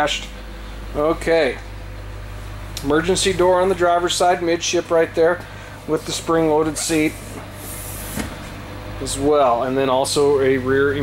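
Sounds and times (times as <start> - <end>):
seat clunk: 6.7 - 8.6.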